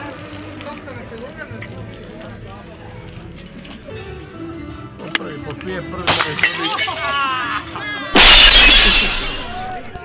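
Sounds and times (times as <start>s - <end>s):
glass shattering on asphalt: 6.0s - 10.0s
broken glass tinkling: 6.1s - 10.0s.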